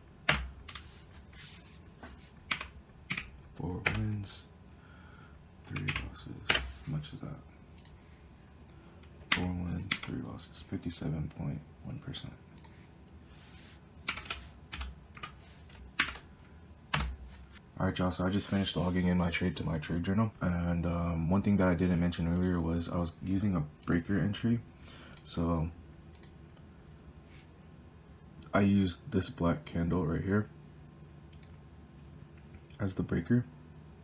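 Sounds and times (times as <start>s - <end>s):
keyboard typing: 2.4s - 4.2s, 9.3s - 10.2s, 14.0s - 16.3s, 16.9s - 17.4s.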